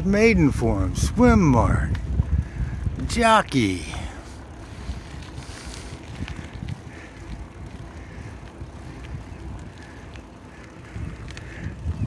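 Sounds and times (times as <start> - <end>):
low rolling rumble: 0.0 - 12.0
wind buffeting microphone: 0.0 - 12.0.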